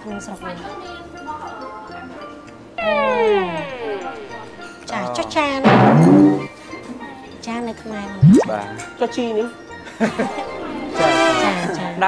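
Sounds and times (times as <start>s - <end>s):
background music: 0.0s - 12.0s
descending pitch sound effect: 8.2s - 8.7s.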